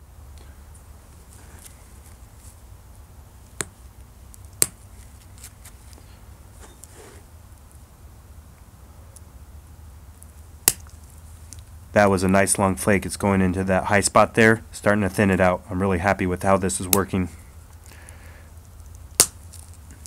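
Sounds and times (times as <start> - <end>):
glass flakes snapping off: 18.9 - 19.8.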